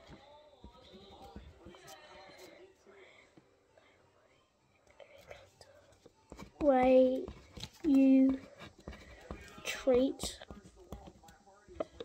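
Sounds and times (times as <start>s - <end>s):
boy faintly whispering: 4.2s - 5.9s.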